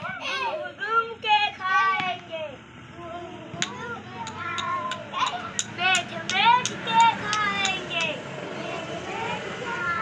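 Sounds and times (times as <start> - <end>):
faint children's voices: 0.0 - 10.0
vehicle driving past: 2.5 - 10.0.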